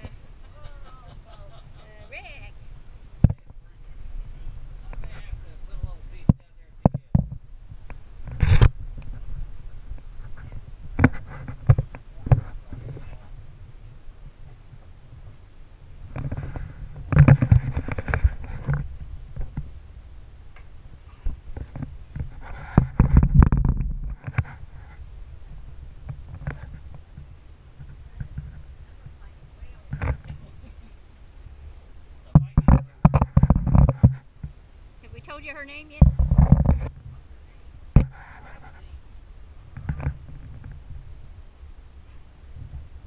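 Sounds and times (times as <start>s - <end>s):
low rumble: 0.0s - 33.6s.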